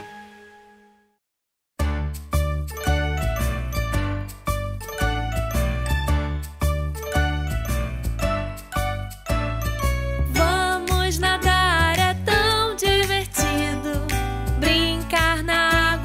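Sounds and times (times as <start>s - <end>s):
instrumental children's music: 1.8s - 16.0s.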